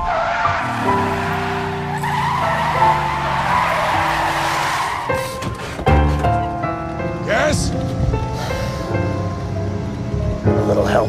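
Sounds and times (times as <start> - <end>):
car tires skidding: 0.0 - 6.2.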